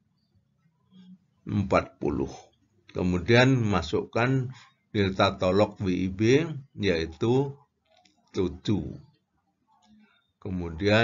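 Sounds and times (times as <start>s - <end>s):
man speaking: 1.5s - 7.7s, 8.4s - 9.1s, 10.4s - 11.0s.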